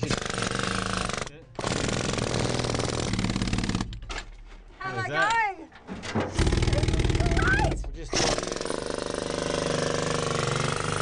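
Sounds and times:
jackhammer hammering rock: 0:00.0 - 0:04.1, 0:06.3 - 0:11.0.

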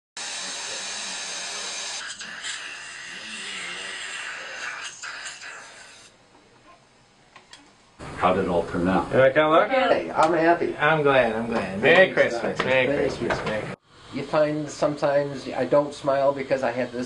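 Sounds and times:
dental suction hissing: 0:00.2 - 0:06.2, 0:13.8 - 0:17.0.

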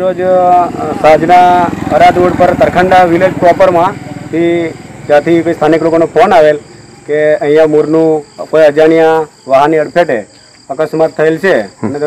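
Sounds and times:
crickets chirring: 0:00.0 - 0:12.0
man speaking: 0:00.0 - 0:12.0.

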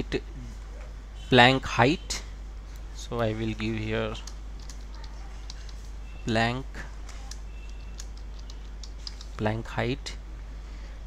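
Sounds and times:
steady low hum: 0:00.0 - 0:11.0
computer keyboard typing: 0:04.1 - 0:05.9, 0:07.1 - 0:09.4.

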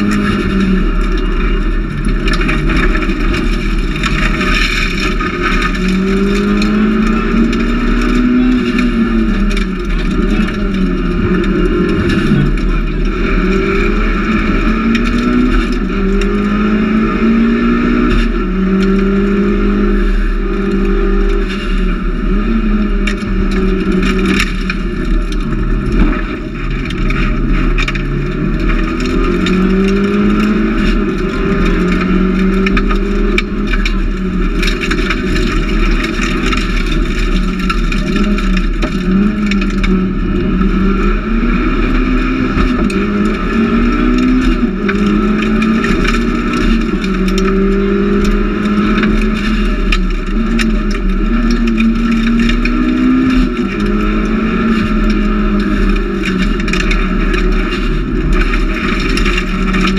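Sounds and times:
car engine revving through gears: 0:00.0 - 0:59.9
road and tyre noise: 0:00.0 - 0:59.9.

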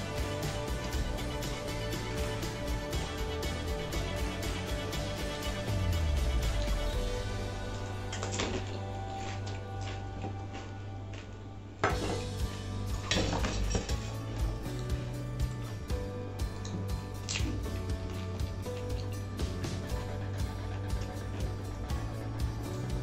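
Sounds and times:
background music: 0:00.0 - 0:23.0.

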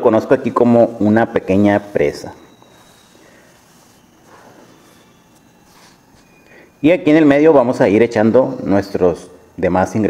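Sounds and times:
fingers rustling through flour: 0:00.5 - 0:06.4.

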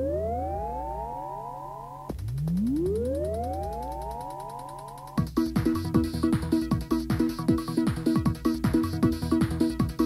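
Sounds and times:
synthesizer tone swooping up: 0:00.0 - 0:05.2.

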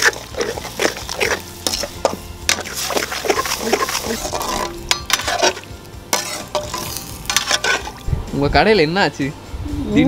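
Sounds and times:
ladle scraping in a pot: 0:00.0 - 0:08.1
gravy sizzling: 0:00.0 - 0:08.5
metal clinking on metal: 0:04.3 - 0:08.0.

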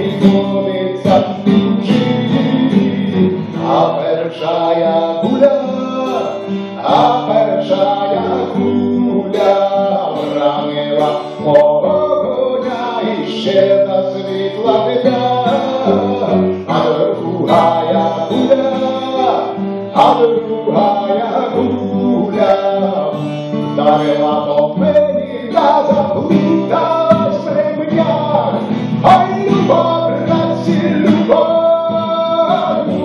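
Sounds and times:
acoustic guitar: 0:00.0 - 0:33.0
man singing: 0:00.0 - 0:33.0.

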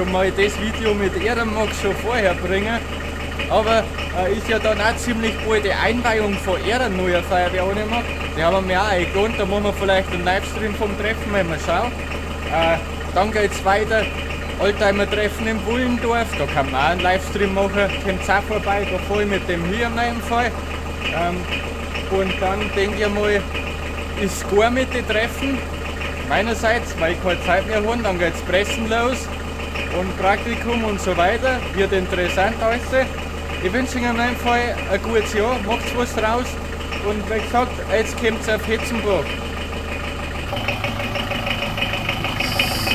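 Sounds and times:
engine idling: 0:00.0 - 0:42.9.

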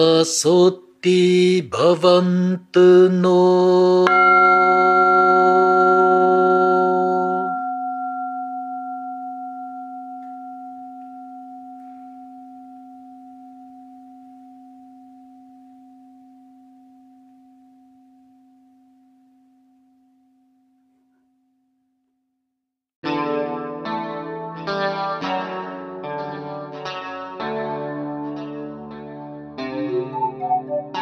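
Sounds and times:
bowl bell ringing: 0:04.1 - 0:20.1.

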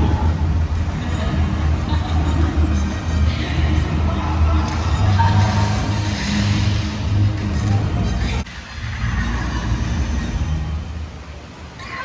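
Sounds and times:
bass-heavy music over loudspeakers: 0:00.0 - 0:11.1.

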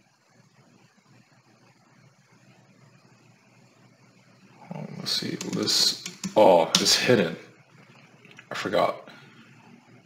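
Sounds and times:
computer keyboard typing: 0:05.1 - 0:06.9.

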